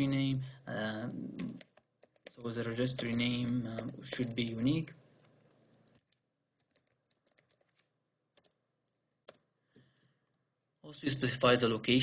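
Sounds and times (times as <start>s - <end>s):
typing on computer keyboard: 1.4s - 4.7s, 5.5s - 7.8s, 8.4s - 9.4s.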